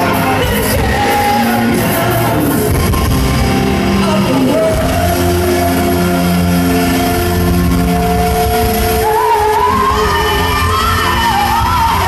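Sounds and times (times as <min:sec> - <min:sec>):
live rock band: 0:00.0 - 0:12.0
man singing: 0:00.0 - 0:12.0.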